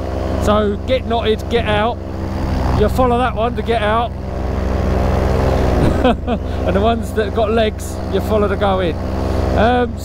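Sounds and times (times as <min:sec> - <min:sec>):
paramotor engine droning: 0:00.0 - 0:10.0.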